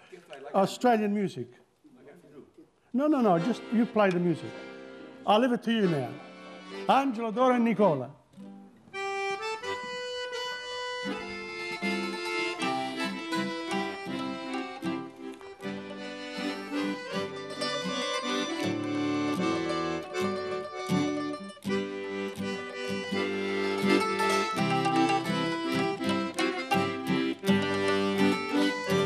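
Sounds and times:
accordion melody: 2.9s - 29.0s
acoustic guitar: 3.2s - 29.0s
mandolin: 3.2s - 29.0s.

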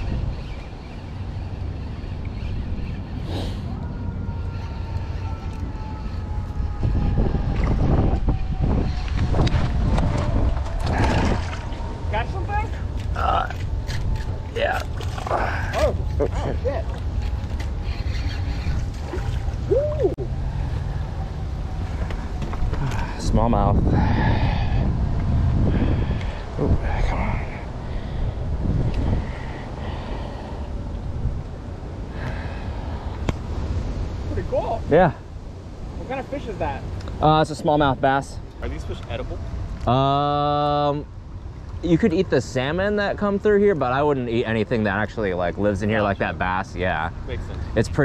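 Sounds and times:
wind rumble on microphone: 0.0s - 40.2s.

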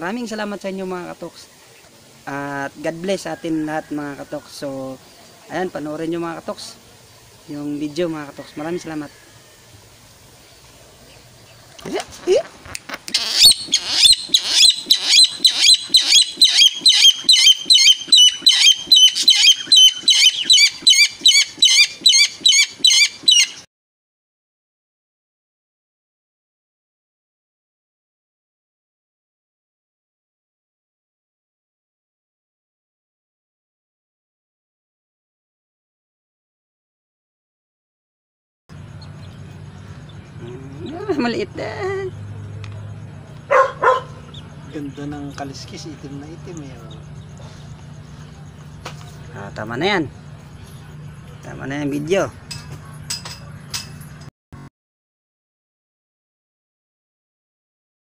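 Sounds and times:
bird calling harsh high notes: 12.9s - 23.7s
low steady hum: 38.7s - 54.3s
dog barking: 43.5s - 44.4s.

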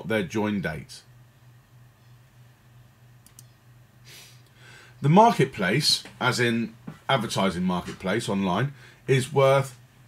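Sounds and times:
low steady hum: 0.0s - 10.0s
computer mouse clicks: 3.2s - 3.6s.

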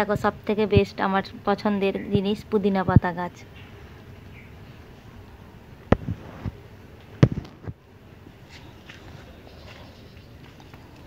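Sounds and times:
sharp thumps and clicks: 5.9s - 7.8s.

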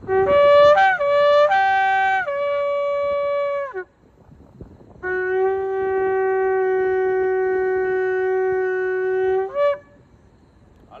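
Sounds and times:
shofar blast: 0.0s - 3.9s, 5.0s - 10.0s.

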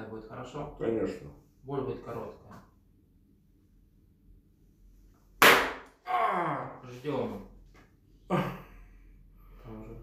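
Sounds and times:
fist smacking on back: 5.4s - 5.9s
man groaning: 6.0s - 6.8s.

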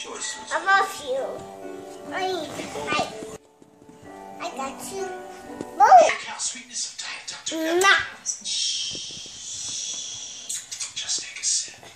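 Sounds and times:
toddler moving in crib: 1.2s - 4.3s.

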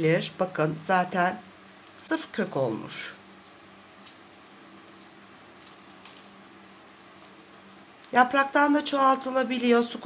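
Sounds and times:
small crackles: 3.3s - 8.6s
soil crumbling and rustling: 3.4s - 7.7s.

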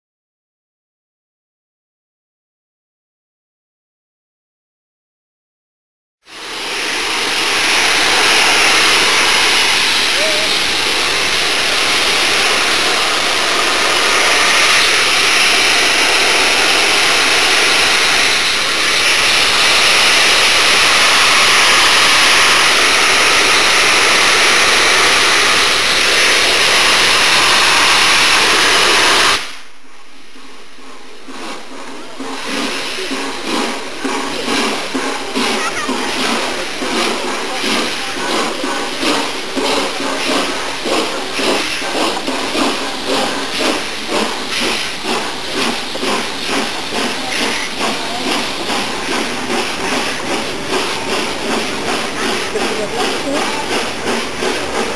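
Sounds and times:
soft steam hiss: 6.3s - 54.9s
steam locomotive letting off steam: 6.3s - 54.9s
voices: 10.0s - 11.0s, 31.1s - 44.7s, 45.4s - 54.9s.

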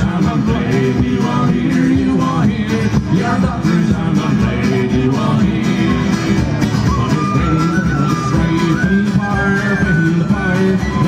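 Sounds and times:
acoustic guitars strummed: 0.0s - 11.0s
frame drum beat: 0.0s - 11.0s.

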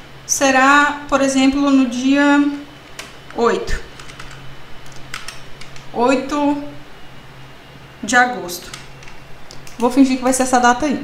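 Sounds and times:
computer keyboard key clicks: 3.0s - 3.2s, 4.0s - 5.9s, 8.7s - 9.8s.

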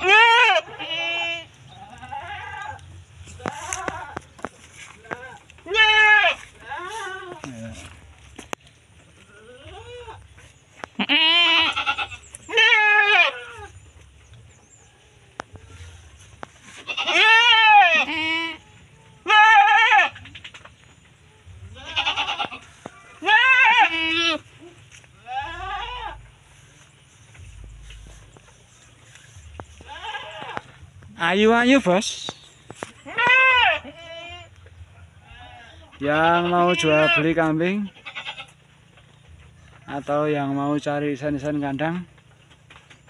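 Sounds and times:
goats bleating: 0.0s - 8.3s, 9.1s - 13.8s, 15.5s - 20.3s, 21.7s - 26.8s, 29.5s - 31.0s, 33.0s - 38.8s.

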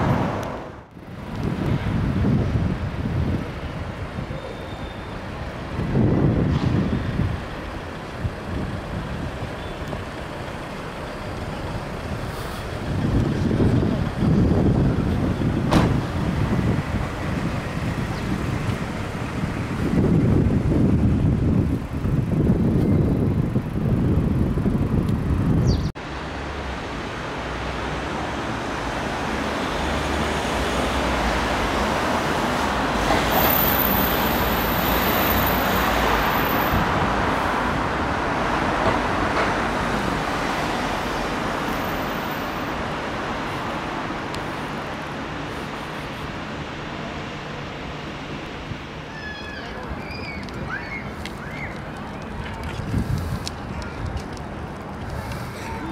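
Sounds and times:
traffic rumbling: 0.0s - 55.9s
traffic hiss: 6.7s - 20.1s, 26.0s - 55.9s.

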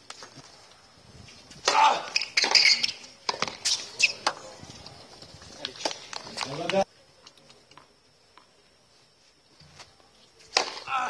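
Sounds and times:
racket hitting tennis ball: 1.6s - 4.4s, 10.5s - 11.0s
tennis ball bouncing: 2.4s - 3.6s.

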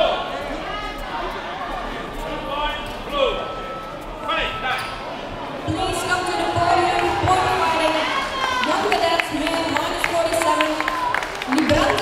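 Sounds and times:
voices calling out in echoing hall: 0.0s - 12.0s.

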